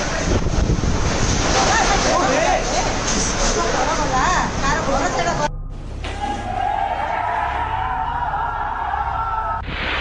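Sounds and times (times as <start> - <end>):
wind blowing on microphone: 0.0 - 1.9.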